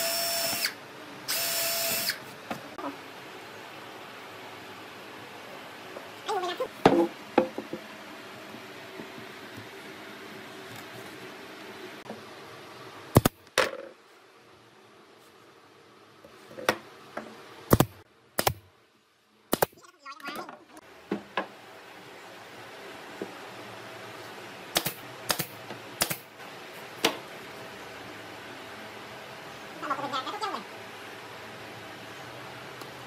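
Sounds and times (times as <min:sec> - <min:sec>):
nail gun firing into wood: 0:17.7 - 0:18.6, 0:19.5 - 0:19.8, 0:24.8 - 0:26.3.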